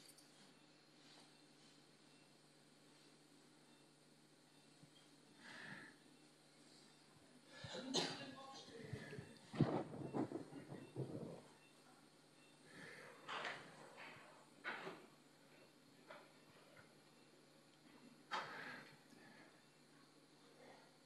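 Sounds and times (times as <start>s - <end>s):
faint indistinct voices: 7.4s - 14.2s.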